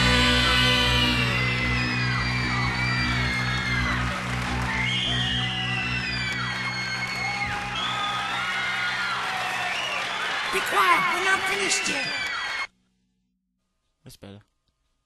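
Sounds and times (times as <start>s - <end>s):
audience cheering and whooping: 0.0s - 12.7s.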